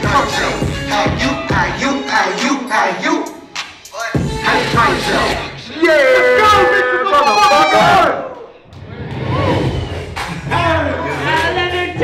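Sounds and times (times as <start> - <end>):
live rap music: 0.0 - 8.2, 9.6 - 12.0.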